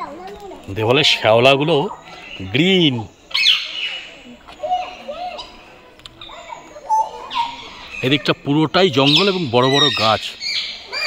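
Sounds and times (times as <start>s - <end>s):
whistled bird calls: 3.2s - 5.6s, 8.9s - 11.0s.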